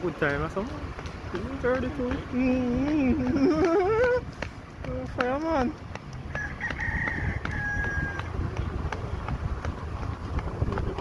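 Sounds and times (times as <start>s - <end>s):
steady low rumble: 0.0s - 11.0s
rooster crowing: 6.3s - 8.4s.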